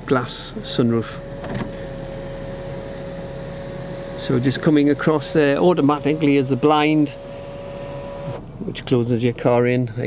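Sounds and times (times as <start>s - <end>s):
electric motor humming: 0.0s - 8.5s.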